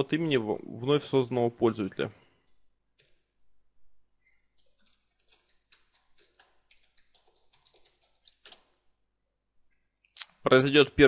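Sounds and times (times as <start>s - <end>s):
typing on computer keyboard: 2.9s - 3.3s, 4.5s - 8.8s.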